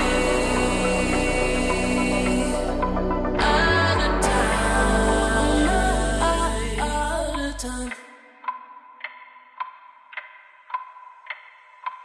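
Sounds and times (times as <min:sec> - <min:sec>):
clock-like ticking: 0:03.4 - 0:12.0.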